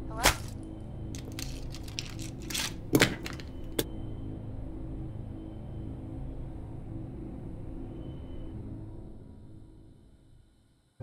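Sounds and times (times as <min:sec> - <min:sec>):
phone casing cracking: 0:01.2 - 0:03.8
small crunching clicks and crackles: 0:01.2 - 0:03.8.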